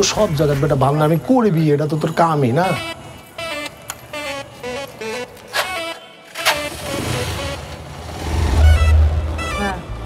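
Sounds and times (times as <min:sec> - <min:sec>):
motorcycle engine starting and running: 0:06.3 - 0:09.5.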